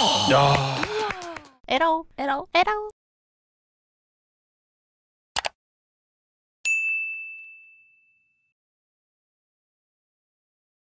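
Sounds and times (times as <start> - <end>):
bell-like ding: 6.7 - 8.6.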